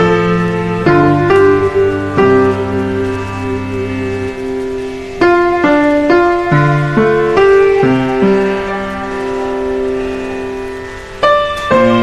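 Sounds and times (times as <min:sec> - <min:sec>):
soft piano chord: 0:00.0 - 0:12.0.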